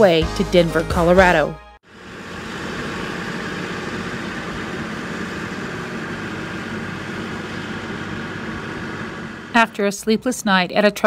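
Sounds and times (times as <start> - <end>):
steady engine hum: 0.0 - 11.0.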